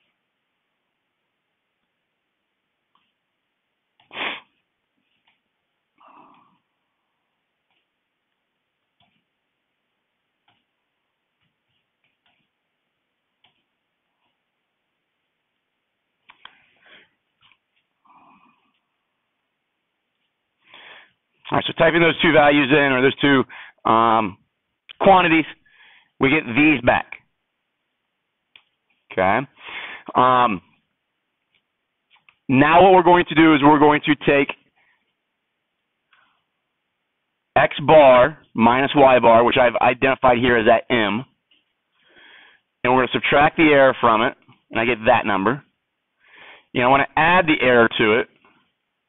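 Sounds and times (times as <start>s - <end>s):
soft vocal sound: 6.0s - 6.8s.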